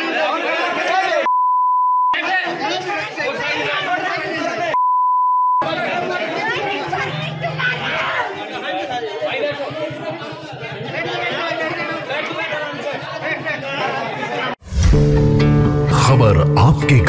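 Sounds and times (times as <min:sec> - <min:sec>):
crowd of men talking: 0:00.0 - 0:01.3, 0:02.2 - 0:04.8, 0:05.6 - 0:14.6
high censor bleep: 0:01.3 - 0:02.2, 0:04.8 - 0:05.6.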